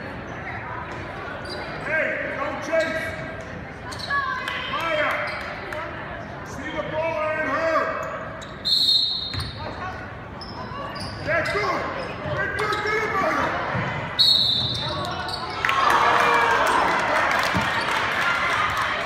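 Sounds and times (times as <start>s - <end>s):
crowd voices: 0.0s - 19.0s
shoe squeaks and knocks: 8.1s - 9.7s, 10.4s - 12.8s.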